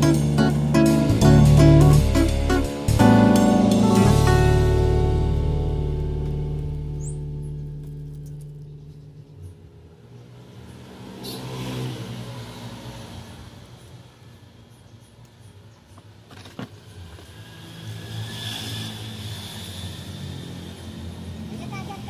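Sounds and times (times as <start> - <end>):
vehicle passing by: 0.0 - 14.7, 16.8 - 22.0
vehicle engine: 0.0 - 14.8.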